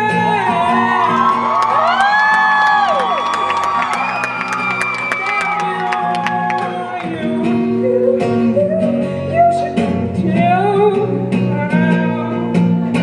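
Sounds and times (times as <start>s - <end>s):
audience whooping and cheering: 0.3s - 7.3s
high whistle: 3.0s - 5.6s
acoustic guitar strummed: 3.7s - 13.0s.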